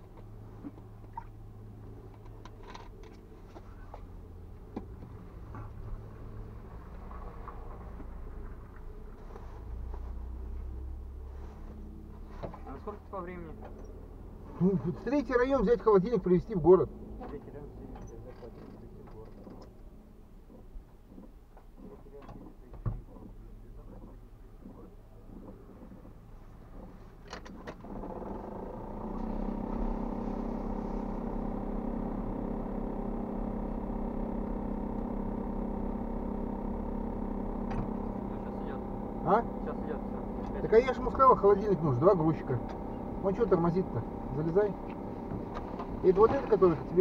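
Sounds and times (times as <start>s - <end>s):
faint low rumble: 0.0s - 27.2s, 27.9s - 47.0s
vehicle engine idling: 0.0s - 47.0s.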